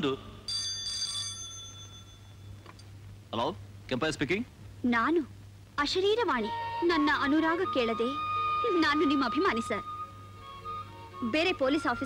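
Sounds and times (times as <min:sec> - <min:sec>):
telephone bell ringing: 0:00.5 - 0:02.6.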